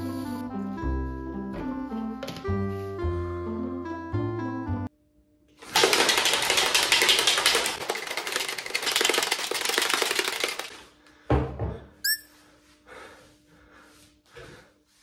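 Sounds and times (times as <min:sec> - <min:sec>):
plastic container rattling: 0:05.6 - 0:10.8.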